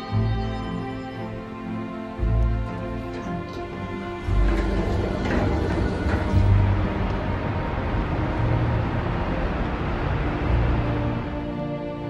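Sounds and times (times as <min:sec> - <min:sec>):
low rumbling swells: 0:00.0 - 0:12.0
passing vehicles rushing: 0:03.4 - 0:12.0.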